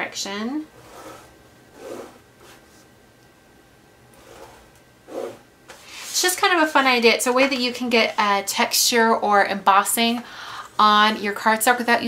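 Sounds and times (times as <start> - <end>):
stylus scraping cardstock: 4.2 - 5.4.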